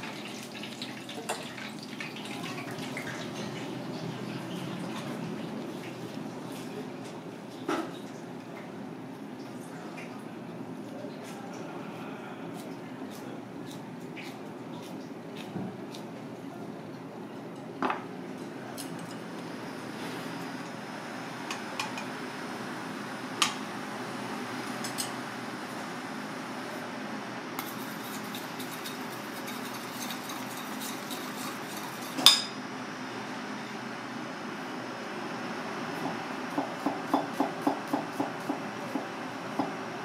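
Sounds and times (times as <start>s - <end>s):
spoon scraping metal bowl: 27.6s - 32.3s
knife chopping on cutting board: 36.5s - 39.7s.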